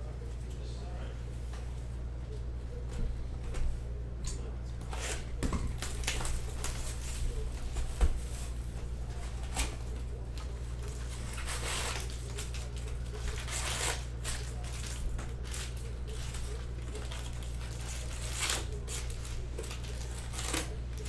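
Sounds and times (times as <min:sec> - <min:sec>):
steady low hum: 0:00.0 - 0:21.0
foil packs crinkling: 0:05.0 - 0:21.0.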